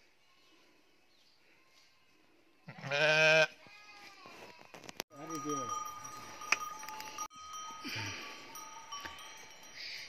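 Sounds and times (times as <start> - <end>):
sheep bleating: 2.7 - 3.6.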